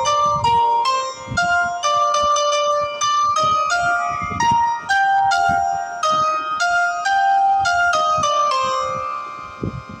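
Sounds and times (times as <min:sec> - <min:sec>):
synthesized melody notes: 0:00.0 - 0:10.0.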